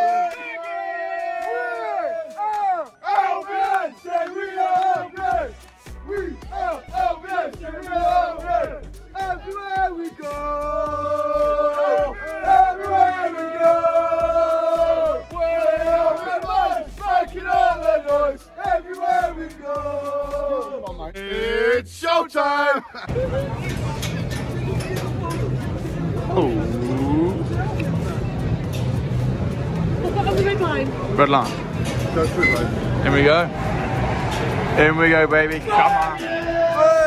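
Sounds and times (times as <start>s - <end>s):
music with steady beat: 0.0s - 21.4s
football supporters chanting: 0.0s - 21.8s, 35.4s - 37.0s.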